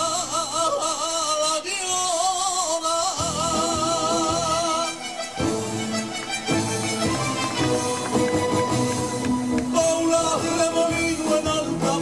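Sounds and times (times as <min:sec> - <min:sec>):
man singing into microphone: 0:00.0 - 0:05.3, 0:09.6 - 0:12.0
recorded backing music: 0:00.0 - 0:12.0.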